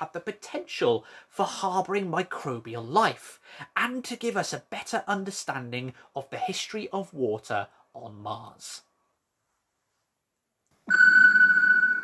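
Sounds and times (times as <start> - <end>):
synthesized ringing tone: 10.9 - 12.0.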